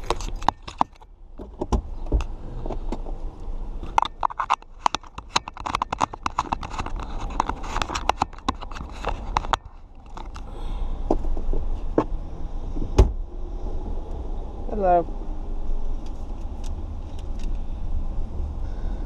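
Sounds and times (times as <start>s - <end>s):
fingers tapping and scraping camera: 0.0s - 1.0s, 3.8s - 10.4s
low steady rumble: 0.0s - 19.0s.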